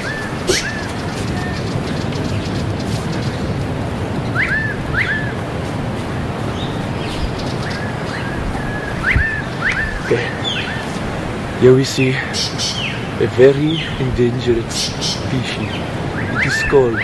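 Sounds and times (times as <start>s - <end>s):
bird chirping: 0.0s - 5.4s, 6.5s - 11.0s, 12.2s - 17.0s
wind on microphone: 0.0s - 17.0s.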